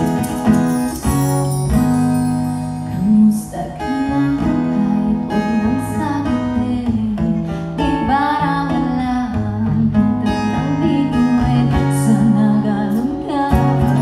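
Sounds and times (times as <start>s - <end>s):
acoustic guitar playing: 0.0s - 14.0s
woman singing: 2.8s - 14.0s.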